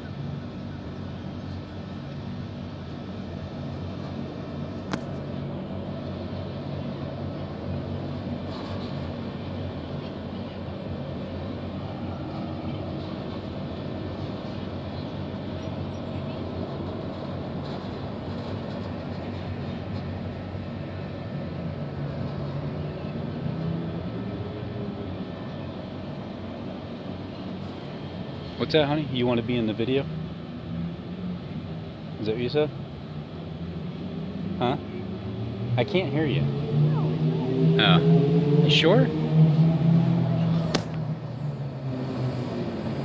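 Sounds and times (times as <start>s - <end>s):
traffic rumbling over bridge: 0.0s - 43.0s.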